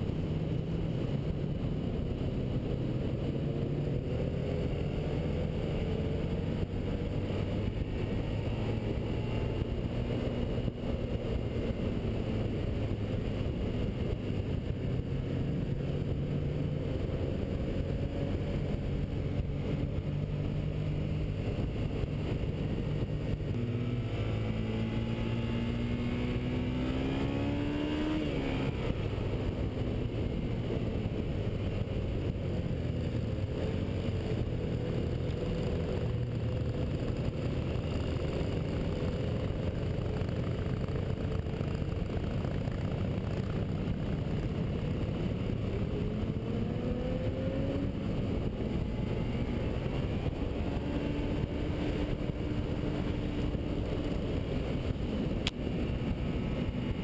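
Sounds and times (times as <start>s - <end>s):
motorcycle engine running: 0.0s - 57.0s
road noise: 0.0s - 57.0s.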